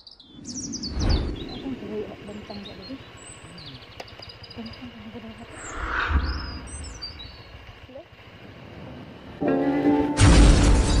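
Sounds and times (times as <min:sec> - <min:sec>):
birds chirping: 0:00.0 - 0:08.3
low rumble: 0:05.4 - 0:09.0.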